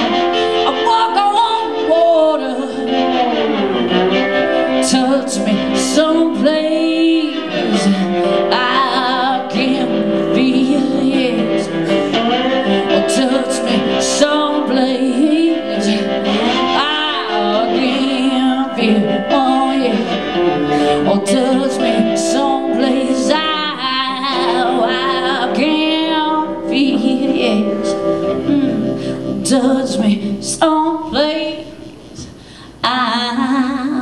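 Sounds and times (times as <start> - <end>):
woman singing wordless vocals: 0.0 - 3.5, 4.7 - 34.0
blues rock band playing: 0.0 - 30.6.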